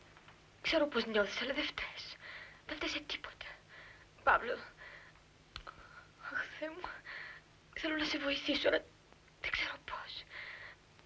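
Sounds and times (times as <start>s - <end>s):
faint low hum: 0.0s - 11.0s
person whispering: 9.4s - 10.3s.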